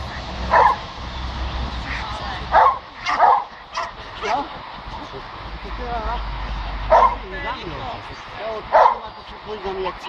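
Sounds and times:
dog barking: 0:00.5 - 0:00.8, 0:02.5 - 0:04.4, 0:06.9 - 0:07.2, 0:08.7 - 0:09.1.

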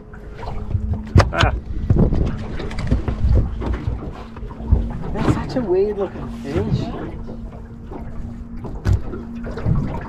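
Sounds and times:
steady low hum: 0:00.0 - 0:10.0
wind rumbling on microphone: 0:00.0 - 0:10.0.

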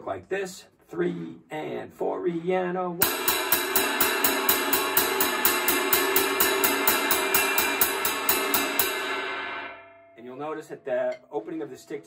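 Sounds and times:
cymbal struck with drumstick: 0:03.0 - 0:10.2.

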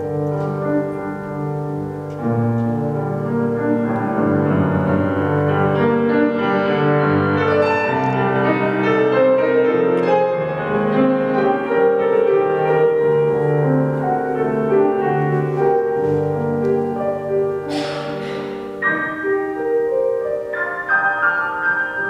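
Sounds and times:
solo classical grand piano: 0:00.0 - 0:22.0.

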